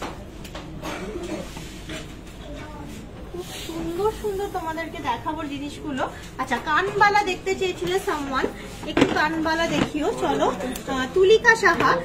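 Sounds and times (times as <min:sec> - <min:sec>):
woman speaking: 0:03.7 - 0:12.0.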